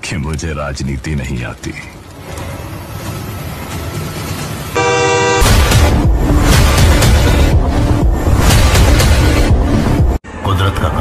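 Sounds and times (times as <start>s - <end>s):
trailer score music: 2.0s - 10.9s
horn-like blare: 4.8s - 5.7s
loud bass hit: 5.4s - 9.6s.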